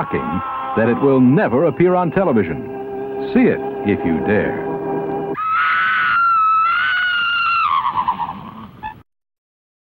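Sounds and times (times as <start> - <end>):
long high-pitched cry: 0.0 - 1.5, 5.4 - 9.0.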